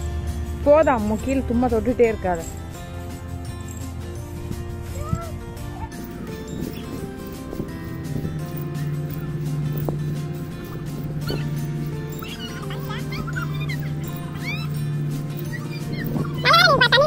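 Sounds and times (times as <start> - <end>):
background music with held notes: 0.0 - 17.0.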